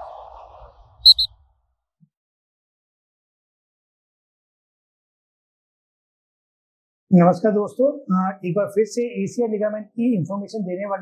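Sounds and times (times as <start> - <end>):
quick high chirps: 1.0 - 1.3.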